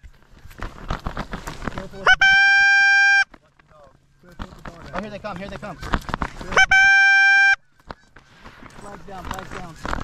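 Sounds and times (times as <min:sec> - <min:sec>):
geese honking: 0:02.0 - 0:03.3, 0:05.5 - 0:10.0
goose call honk: 0:02.0 - 0:03.3, 0:06.5 - 0:07.6.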